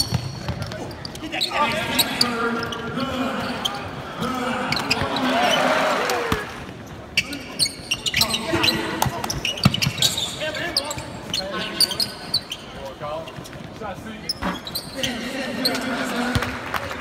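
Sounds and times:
sneakers squeaking: 0.0s - 16.6s
players calling out: 0.2s - 12.9s, 14.2s - 17.0s.

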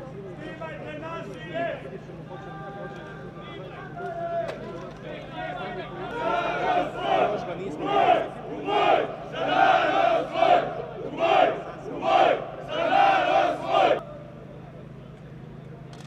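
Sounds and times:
crowd shouting a chant: 5.2s - 14.2s.

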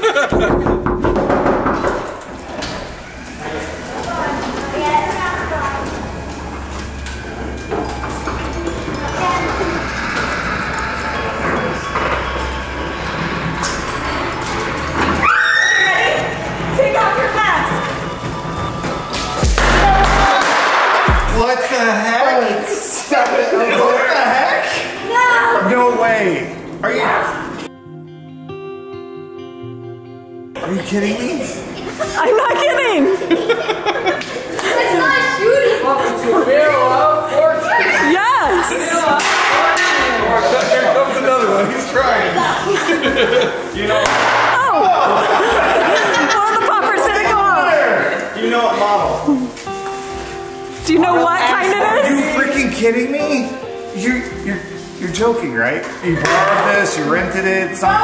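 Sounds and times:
music: 0.0s - 21.8s, 24.6s - 58.0s
group shouting and screaming: 15.1s - 16.4s, 19.4s - 21.4s
excited shouts and shrieks: 15.2s - 16.4s
deep downward-sliding bass hit: 19.4s - 21.4s
sudden bang: 19.4s - 21.4s.

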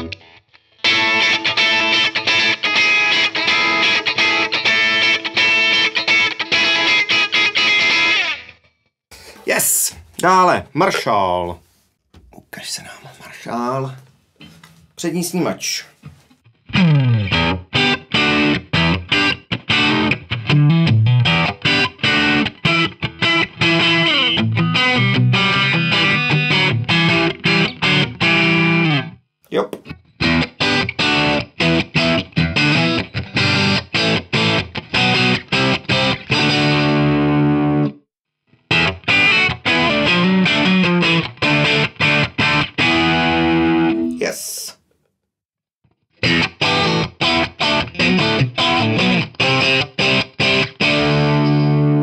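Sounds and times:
overdriven electric guitar chords: 0.0s - 8.5s, 16.7s - 29.1s, 30.2s - 38.0s, 38.7s - 44.2s, 46.2s - 52.0s.

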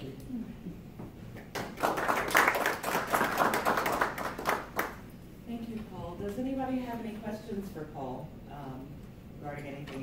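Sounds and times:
audience applauding: 1.5s - 5.0s.

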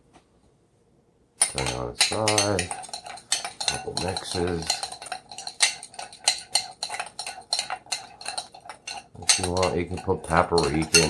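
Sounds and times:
fork clinking in ceramic bowl: 1.4s - 11.0s.

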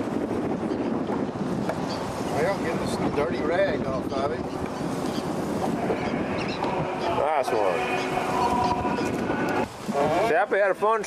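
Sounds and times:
wind on microphone: 0.0s - 11.0s
water sloshing around boat: 1.4s - 11.0s.

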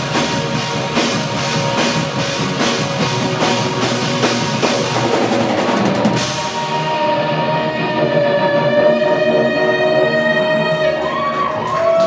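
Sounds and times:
rapid drum fill: 0.0s - 7.2s
rock band playing: 0.0s - 12.0s.

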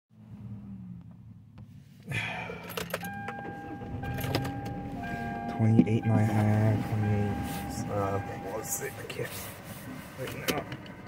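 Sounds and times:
steady high tone: 3.0s - 9.2s.

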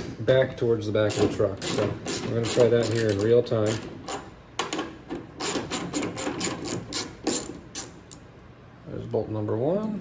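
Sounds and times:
ratchet wrench clicking: 5.4s - 8.2s.

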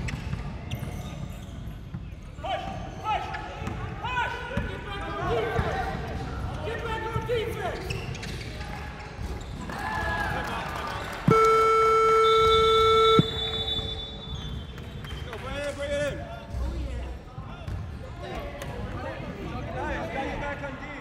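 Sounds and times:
sneakers squeaking: 0.0s - 4.7s, 7.2s - 9.8s, 11.0s - 15.4s
electronic scoreboard buzzer: 11.3s - 13.9s.

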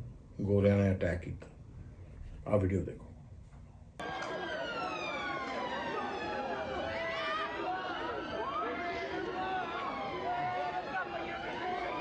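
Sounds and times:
crowd voices: 4.0s - 12.0s
emergency siren wailing: 4.0s - 12.0s.

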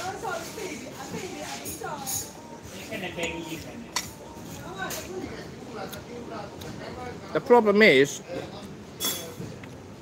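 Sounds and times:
fork clinking on a plate: 9.0s - 9.4s.

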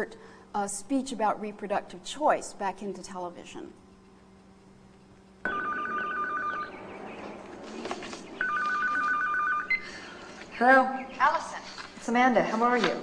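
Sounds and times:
telephone ringing: 5.4s - 7.6s, 8.4s - 10.0s.

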